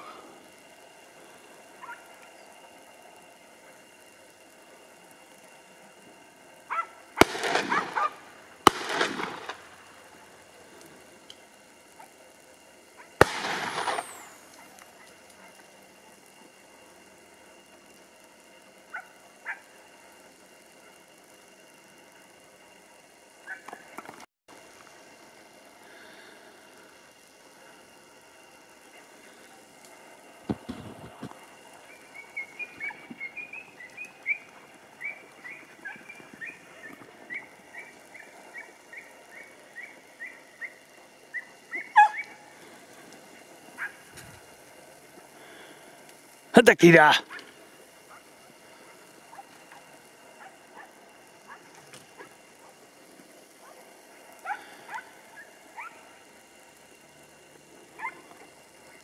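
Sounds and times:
hounds yelping: 0:01.8 - 0:02.2, 0:06.6 - 0:09.6, 0:18.9 - 0:19.8, 0:23.4 - 0:23.9, 0:31.8 - 0:42.6, 0:43.2 - 0:44.2, 0:47.3 - 0:52.9, 0:53.5 - 0:56.2, 0:57.9 - 0:58.4
sharp loud bang: 0:13.2 - 0:14.2.

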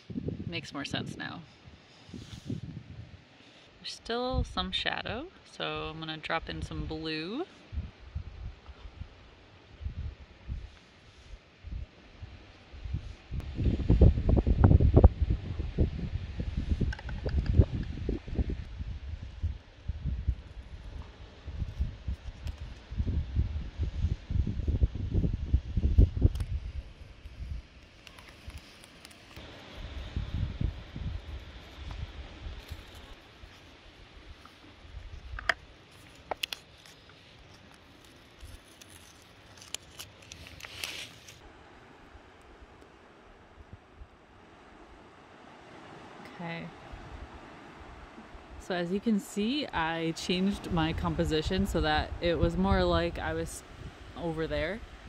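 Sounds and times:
wind buffeting microphone: 0:00.0 - 0:03.3, 0:04.2 - 0:36.5, 0:45.7 - 0:55.0
masking tape peeling off paper: 0:35.9 - 0:41.4.

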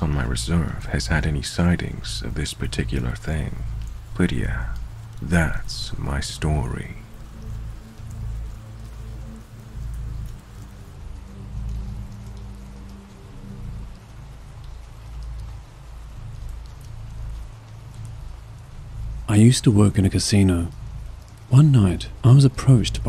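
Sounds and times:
rain falling: 0:00.0 - 0:23.0.

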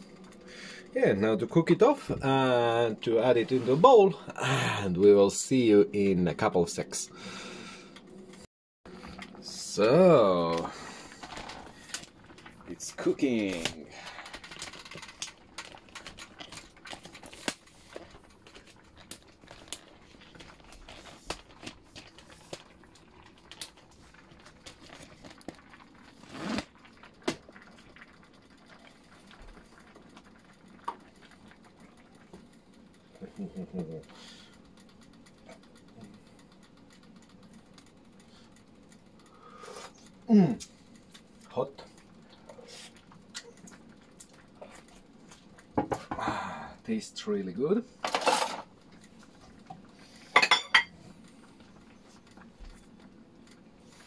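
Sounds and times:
food crackling in a pot: 0:08.9 - 0:46.1, 0:46.8 - 0:54.0.

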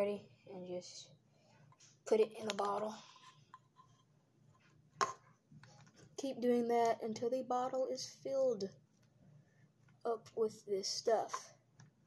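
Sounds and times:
faint handling sounds: 0:01.4 - 0:06.2.

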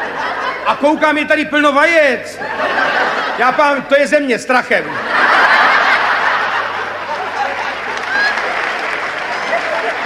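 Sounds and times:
audience laughing: 0:00.0 - 0:01.4, 0:02.0 - 0:10.0.

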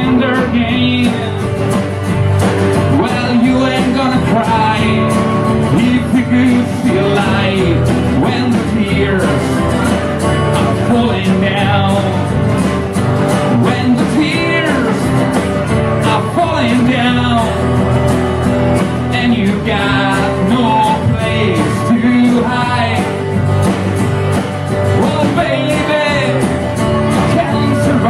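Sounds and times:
man singing into a microphone: 0:00.0 - 0:01.8, 0:02.8 - 0:12.6, 0:13.4 - 0:18.0, 0:19.0 - 0:23.3, 0:24.8 - 0:28.0
strummed acoustic guitars: 0:00.0 - 0:28.0.

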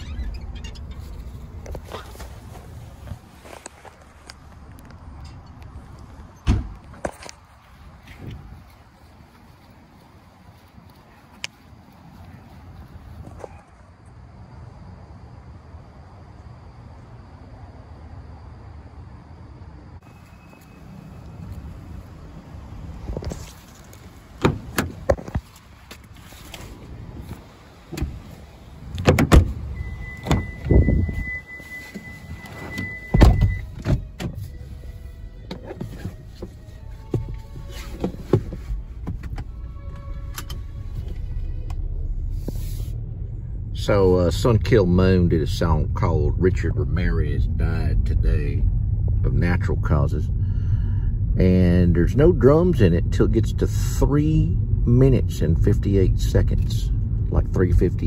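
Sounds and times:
car rumbling: 0:00.0 - 0:58.0
steady high car beep: 0:20.0 - 0:21.6, 0:29.5 - 0:33.8
car door and seat thumps: 0:24.3 - 0:26.1, 0:27.1 - 0:29.6, 0:32.6 - 0:34.4, 0:37.0 - 0:39.5.

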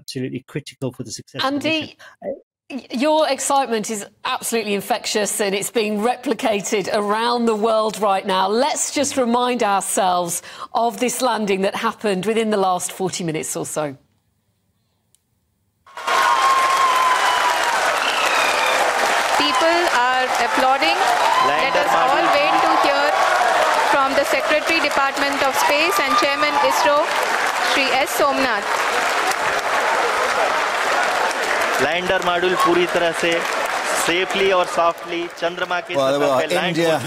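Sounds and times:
man speaking: 0:00.0 - 0:02.4, 0:21.4 - 0:22.2, 0:34.0 - 0:37.0
people applauding: 0:15.9 - 0:37.0.

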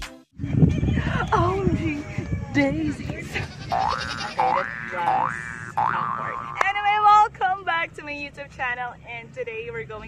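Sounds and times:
cartoon boing sound effect: 0:04.4 - 0:06.6.

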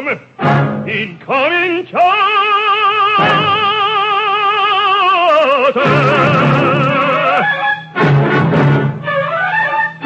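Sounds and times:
operatic baritone singing: 0:00.0 - 0:07.8.

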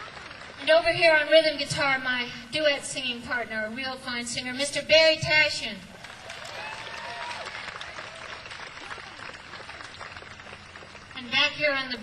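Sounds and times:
audience applauding: 0:00.0 - 0:00.6, 0:06.0 - 0:11.2
cheers and whoops: 0:06.0 - 0:09.3.

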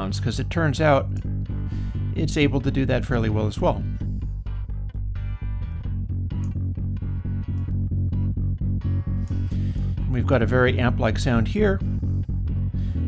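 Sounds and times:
electric bass guitar notes: 0:00.0 - 0:13.0.

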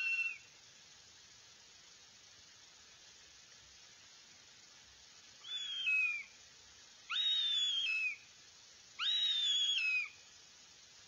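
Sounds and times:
faint steady hiss: 0:00.0 - 0:11.0
hawk chick whistled begging calls: 0:05.4 - 0:06.2, 0:07.1 - 0:08.2, 0:09.0 - 0:10.1.

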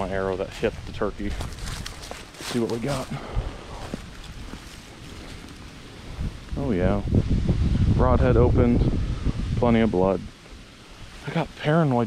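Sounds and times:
wind on microphone: 0:00.0 - 0:02.2, 0:03.1 - 0:11.2.

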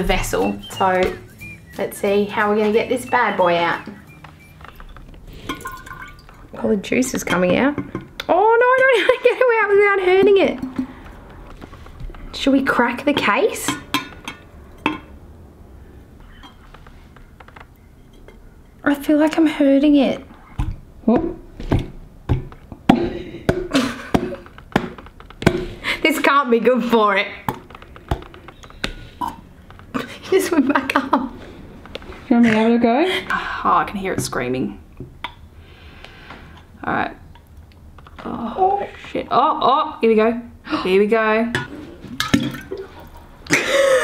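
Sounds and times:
liquid pouring into glass jar: 0:05.3 - 0:06.6.

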